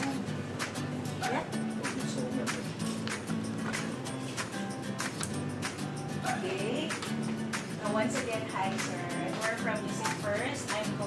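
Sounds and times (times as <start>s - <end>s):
acoustic guitar strumming: 0.0s - 11.0s.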